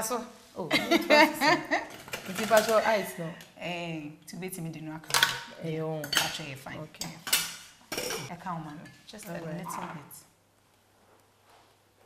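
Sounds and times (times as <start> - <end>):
metal spoon clinking on pot: 6.0 - 8.2.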